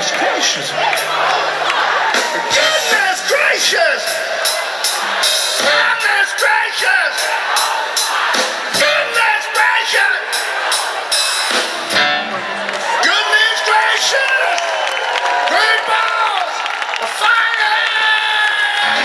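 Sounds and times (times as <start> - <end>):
steady drum beat: 0.8 - 12.3
live rock band playing: 0.8 - 13.0
lead vocal singing: 2.1 - 11.4.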